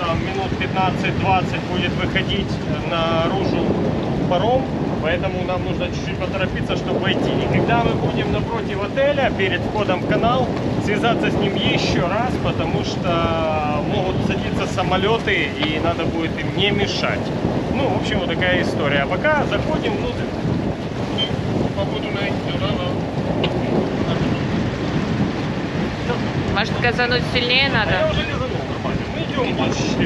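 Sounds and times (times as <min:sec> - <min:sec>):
wind noise on microphone: 0:00.0 - 0:30.0
voices over radio: 0:26.1 - 0:28.4.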